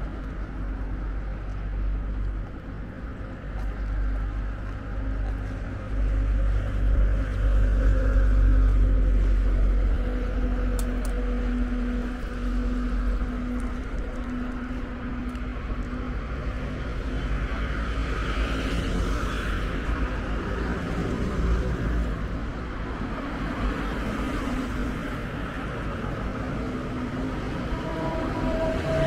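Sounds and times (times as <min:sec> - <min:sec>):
passing vehicle engine hum: 0:00.0 - 0:29.0.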